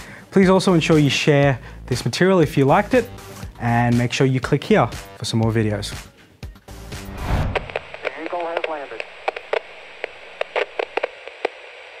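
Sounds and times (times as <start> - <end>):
short radio blips: 7.0 - 11.2
radio static hiss: 7.0 - 12.0
garbled radio voice: 8.0 - 9.5.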